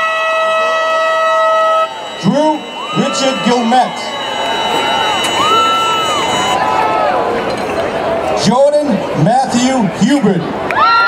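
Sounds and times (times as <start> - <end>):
air horn blast: 0.0 - 6.8.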